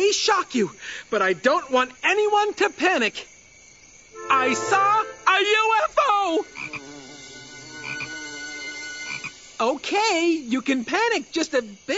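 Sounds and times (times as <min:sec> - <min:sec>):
faint high insect tones: 0:00.0 - 0:11.9
frogs croaking: 0:00.0 - 0:11.9.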